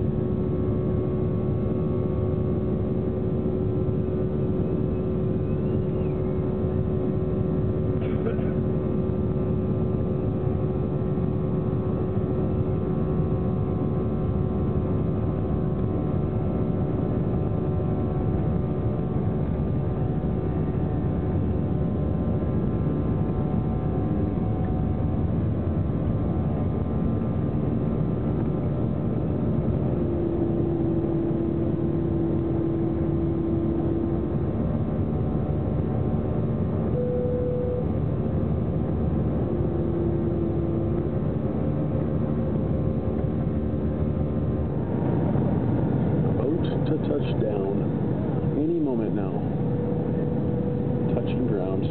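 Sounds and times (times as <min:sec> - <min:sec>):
jet engine cabin hum: 0:00.0 - 0:51.9.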